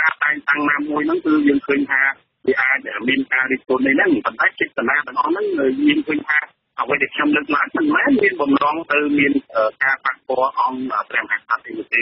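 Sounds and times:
person reading news: 0.0s - 12.0s.

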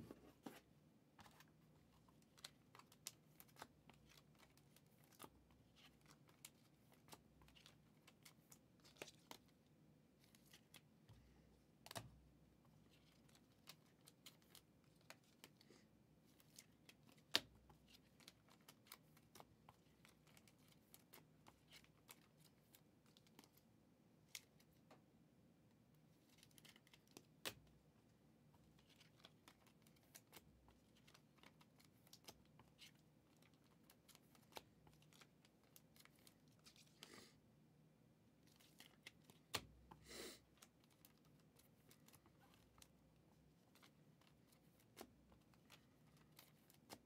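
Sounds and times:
trading cards rustling: 38.4s - 47.0s.

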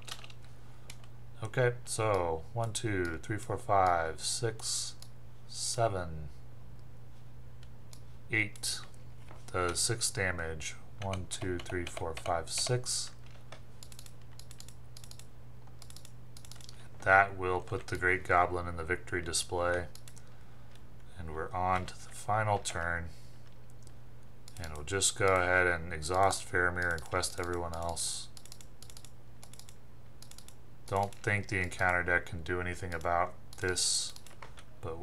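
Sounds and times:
computer keyboard and mouse clicks: 0.0s - 1.1s, 11.0s - 16.8s, 19.7s - 20.8s, 23.7s - 25.5s, 26.1s - 32.0s, 32.9s - 34.7s
steady low hum: 0.0s - 35.0s.

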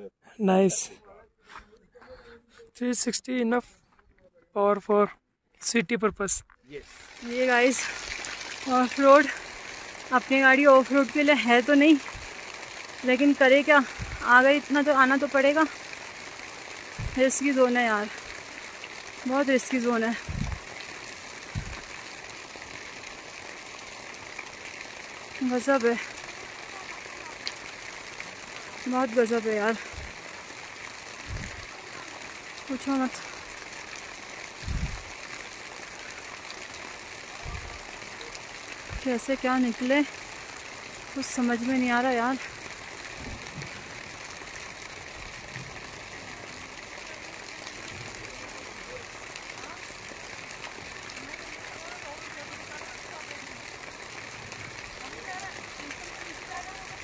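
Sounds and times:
stream running over rocks: 4.7s - 57.0s.

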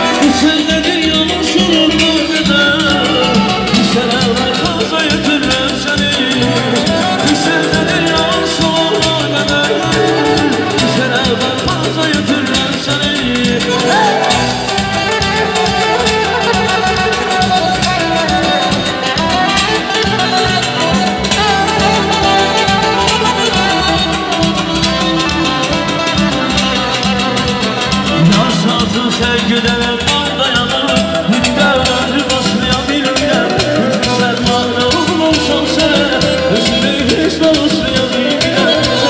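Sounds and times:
electric guitar melody: 0.0s - 39.0s
frame drum rhythm: 0.0s - 39.0s.

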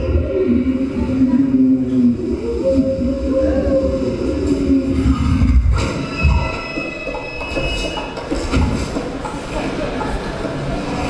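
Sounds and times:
train rumbling past: 0.0s - 11.0s
train wheels squealing: 5.8s - 8.6s.

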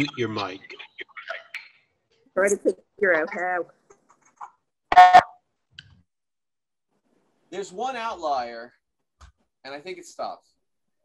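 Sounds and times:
speech over video call: 0.0s - 6.1s, 7.0s - 10.6s.

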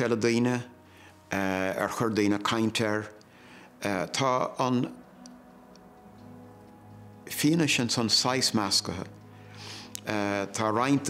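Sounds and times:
man speaking: 10.0s - 11.0s.

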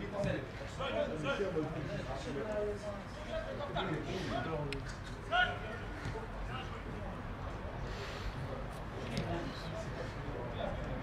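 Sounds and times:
open-air background noise: 0.0s - 11.0s
footballers calling: 5.2s - 7.1s.

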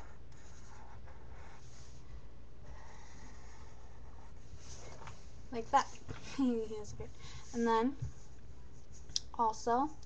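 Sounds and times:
marker drawing on paper: 0.0s - 5.0s.

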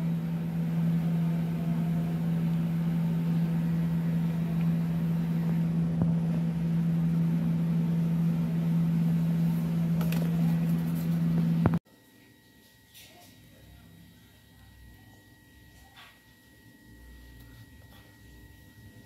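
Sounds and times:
low-pitched hum: 0.0s - 11.8s.

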